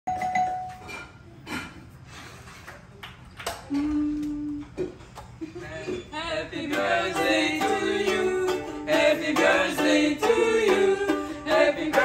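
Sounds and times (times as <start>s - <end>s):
doorbell chime: 0.1s - 0.9s.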